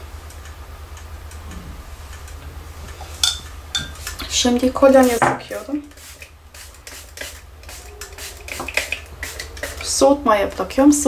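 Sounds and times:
light ticking: 0.3s - 1.5s
spray bottle hisses: 5.9s - 9.9s.

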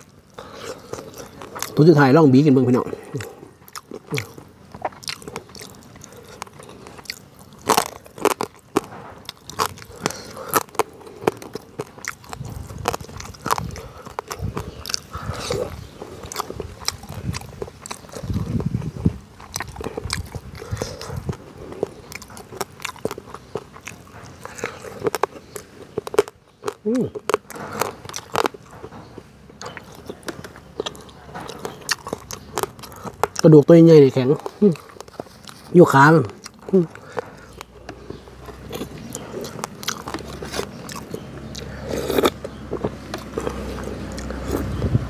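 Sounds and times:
crunching small bones: 0.0s - 45.0s
person chewing: 0.0s - 45.0s.

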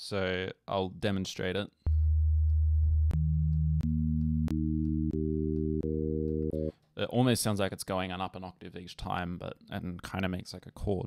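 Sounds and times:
low synth sine tone: 1.9s - 6.7s.

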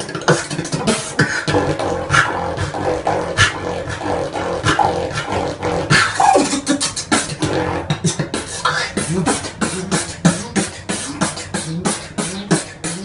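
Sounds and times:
falling vocal sound: 0.0s - 13.0s
low hum: 0.0s - 13.0s
man beatboxing: 0.0s - 13.0s.

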